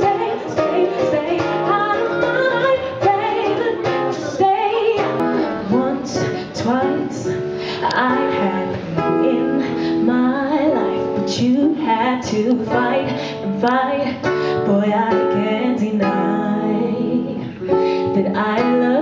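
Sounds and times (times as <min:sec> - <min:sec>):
strummed acoustic guitar: 0:00.0 - 0:19.0
woman singing into a microphone: 0:00.0 - 0:19.0.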